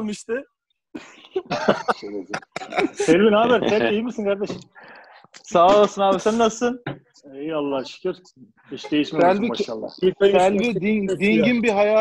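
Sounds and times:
men's voices over video call: 0.0s - 12.0s
coughing: 1.0s - 4.0s, 5.4s - 6.5s.

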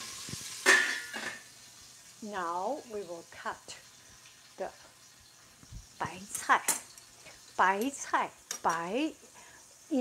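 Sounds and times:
woman speaking: 2.2s - 3.8s, 6.0s - 6.8s, 7.6s - 9.2s.

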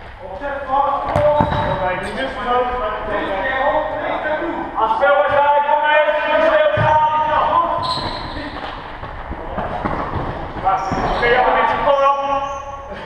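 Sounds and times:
shoes squeaking on hall floor: 0.4s - 2.3s, 6.4s - 13.0s.

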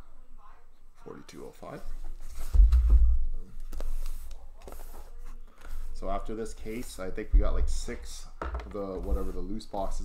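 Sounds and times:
deep low bump: 7.3s - 7.9s.

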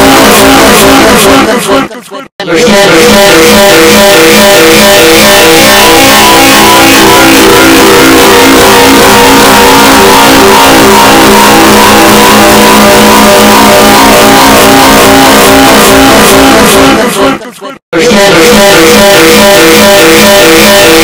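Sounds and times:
distorted wall of sound: 0.0s - 1.6s, 2.4s - 21.0s.

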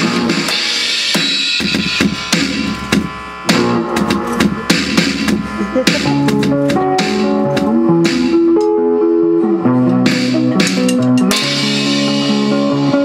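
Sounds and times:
electronic drum kit: 0.0s - 8.8s, 9.7s - 13.0s.

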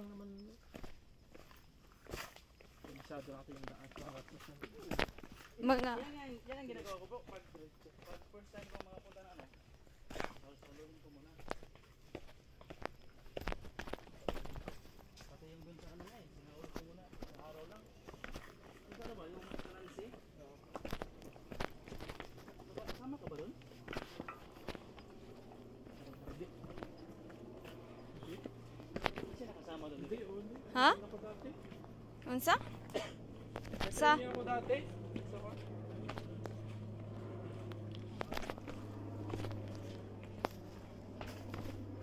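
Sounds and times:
footsteps on rocky dirt trail: 0.1s - 42.0s.

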